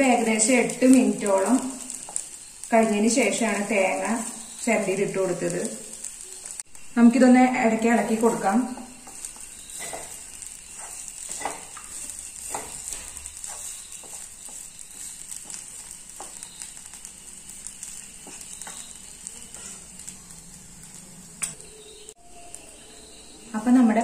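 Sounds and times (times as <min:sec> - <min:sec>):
food sizzling in a pan: 0:00.0 - 0:24.0
wooden spatula scraping a pan: 0:08.2 - 0:20.0.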